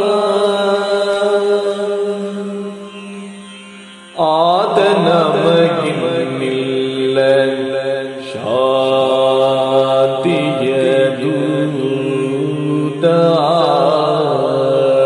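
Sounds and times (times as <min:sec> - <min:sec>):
steady drone: 0:00.0 - 0:15.0
man singing drawn-out phrases: 0:04.2 - 0:15.0.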